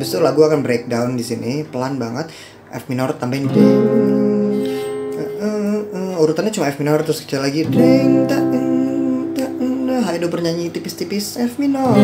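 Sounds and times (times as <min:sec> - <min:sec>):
acoustic guitar chord ringing: 0:00.0 - 0:02.5, 0:03.4 - 0:06.5, 0:07.5 - 0:12.0.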